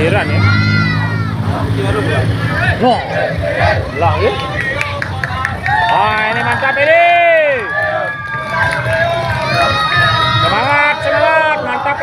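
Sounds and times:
voices shouting: 0.0 - 12.0
marching footsteps on road: 2.6 - 12.0.

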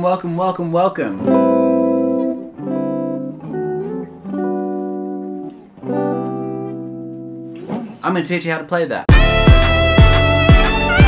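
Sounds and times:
clean electric guitar chords: 1.1 - 7.9, 9.1 - 11.0.

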